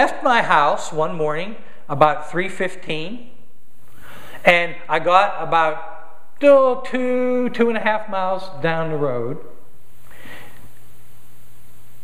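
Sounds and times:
low electrical hum: 0.0s - 12.0s
man breathing in through nose: 3.9s - 4.4s, 10.0s - 10.7s.

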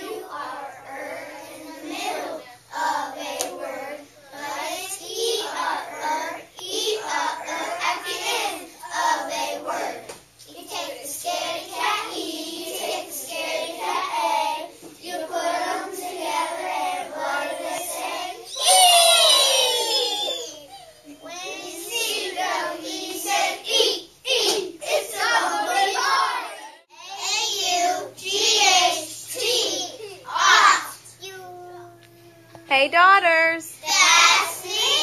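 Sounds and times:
children chanting in unison: 33.8s - 35.0s.

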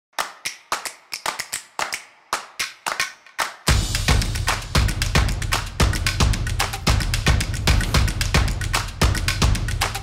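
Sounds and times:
clap-like percussion hits: 0.2s - 10.0s.

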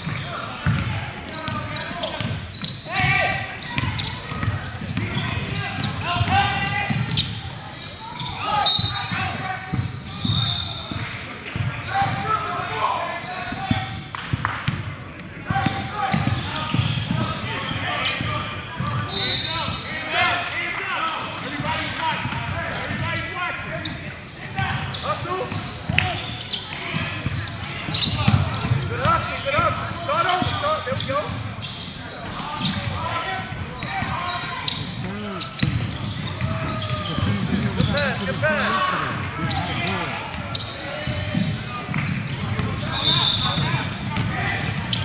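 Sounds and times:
shouts and chatter: 0.0s - 45.0s
basketball bouncing on hardwood floor: 0.6s - 0.9s, 35.6s - 37.9s.

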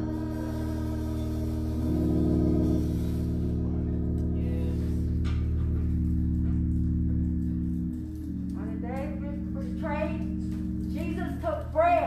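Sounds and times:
organ sustained chords: 0.0s - 12.0s
voice: 8.6s - 12.0s.

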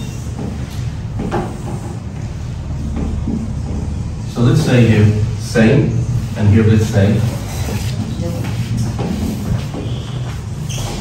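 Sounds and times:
marker squeaking on whiteboard: 0.0s - 0.4s, 7.2s - 11.0s.

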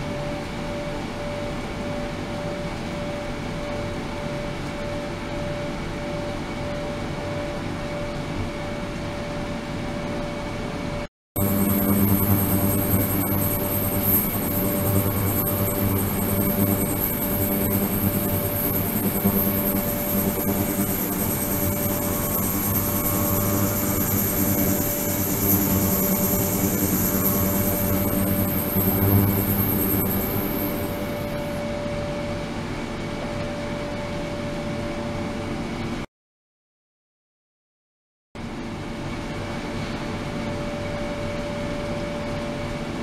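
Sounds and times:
ultrasonic cleaner hiss: 11.4s - 31.3s
low hum: 11.4s - 31.8s.

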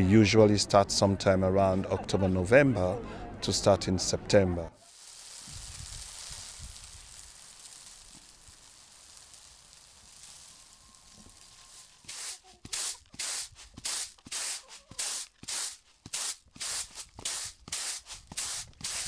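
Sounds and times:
grain pouring with a hiss: 4.8s - 19.0s
grain swishing in winnowing basket: 4.8s - 19.0s.

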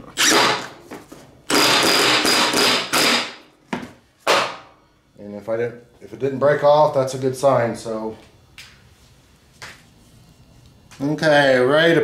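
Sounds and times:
impact wrench hammering: 1.5s - 3.5s.

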